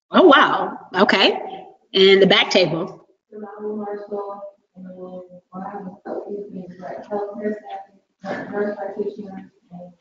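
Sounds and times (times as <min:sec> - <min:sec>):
person speaking indistinctly: 0:00.1 - 0:10.0.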